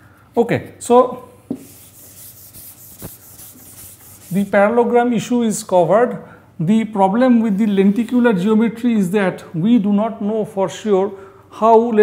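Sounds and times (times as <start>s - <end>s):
duster wiping chalkboard: 1.5s - 4.8s.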